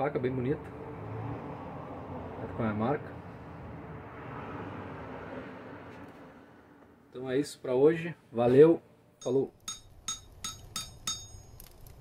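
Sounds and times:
sharp ringing clinks: 9.2s - 12.0s.

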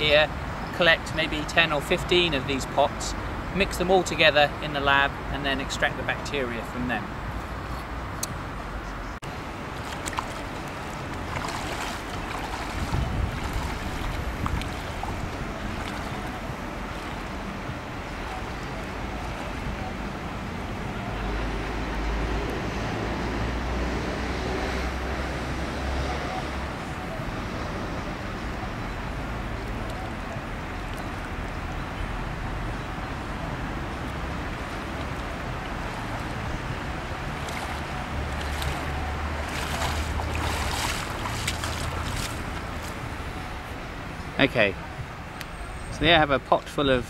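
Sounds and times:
outdoor background noise: 0.0s - 47.0s
wind rumble on microphone: 7.2s - 46.0s
water sloshing and splashing: 9.2s - 20.9s, 28.4s - 44.0s.

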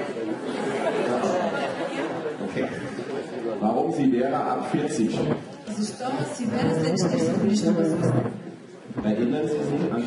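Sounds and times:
overlapping voices in a large hall: 0.0s - 10.0s.

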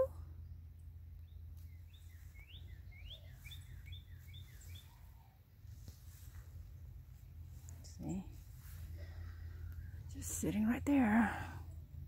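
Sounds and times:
low outdoor rumble: 0.0s - 12.0s
songbird chirping: 0.0s - 12.0s.

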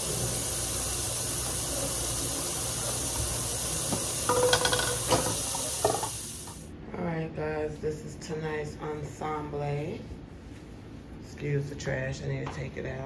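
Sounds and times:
steady rushing hiss: 0.0s - 6.7s.

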